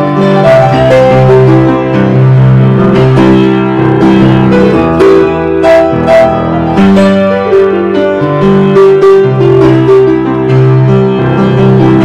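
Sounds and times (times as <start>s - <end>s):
piano playing a slow hymn: 0.0s - 12.0s.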